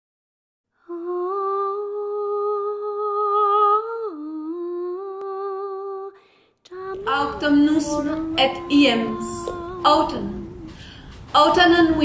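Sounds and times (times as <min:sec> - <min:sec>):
person humming: 0:00.9 - 0:10.8.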